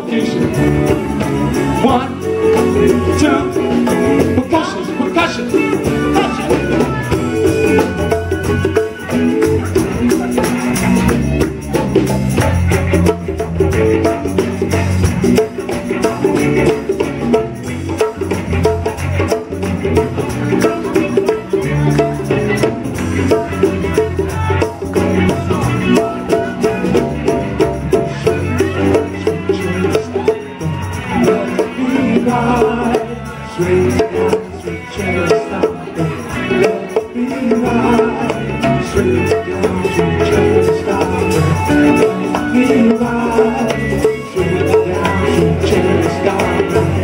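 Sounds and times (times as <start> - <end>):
bass line: 0.0 - 47.0
congas: 0.0 - 47.0
drums: 0.0 - 47.0
funk band playing: 0.0 - 47.0.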